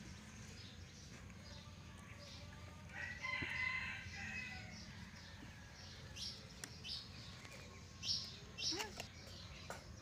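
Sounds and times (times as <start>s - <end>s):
rooster crowing: 2.9s - 4.8s.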